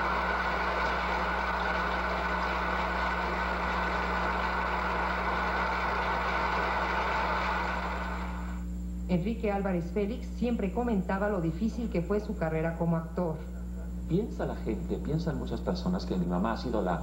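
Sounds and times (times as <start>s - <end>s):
audience applauding: 0.0s - 8.4s
low steady recording hum: 0.0s - 17.0s.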